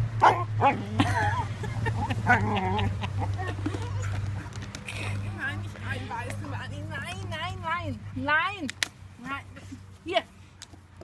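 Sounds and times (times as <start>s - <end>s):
dog barking and yipping: 0.2s - 0.9s.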